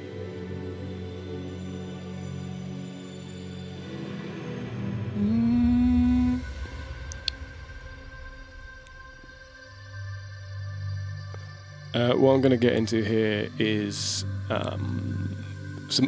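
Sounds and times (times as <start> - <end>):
low drone: 3.8 - 16.0.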